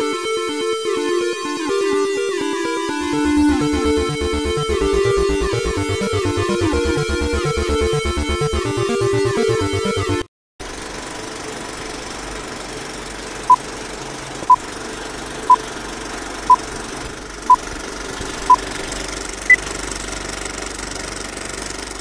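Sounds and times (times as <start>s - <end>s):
film projector clatter: 16.0s - 22.0s.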